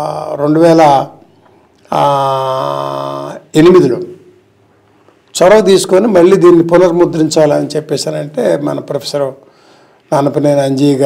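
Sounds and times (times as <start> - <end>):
man talking: 0.0 - 1.2, 1.9 - 4.3, 5.3 - 9.4, 10.1 - 11.0.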